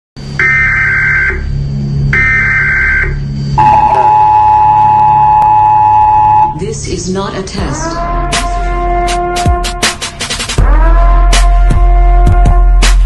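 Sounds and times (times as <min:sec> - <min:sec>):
low drone: 0:00.2 - 0:08.8
high data bursts: 0:00.4 - 0:07.8
two-tone attention signal: 0:02.2 - 0:06.6.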